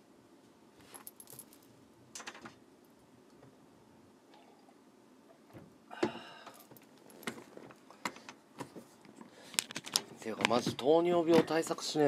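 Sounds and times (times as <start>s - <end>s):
small sharp clicks and rattles: 1.0s - 2.6s.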